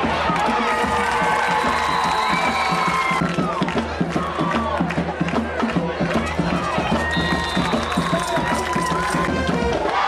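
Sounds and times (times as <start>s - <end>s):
fast drum beat: 0.0s - 9.9s
crowd voices: 0.0s - 10.0s
school band playing: 0.0s - 10.0s.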